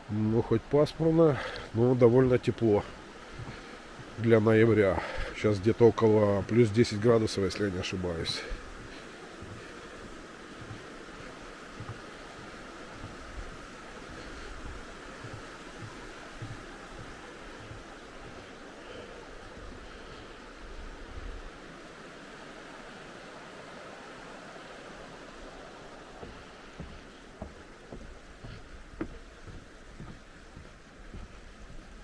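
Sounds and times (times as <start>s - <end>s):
river water rushing over stones: 0.0s - 32.0s
footsteps on wooden footbridge: 1.3s - 6.0s, 7.2s - 21.5s, 25.0s - 32.0s.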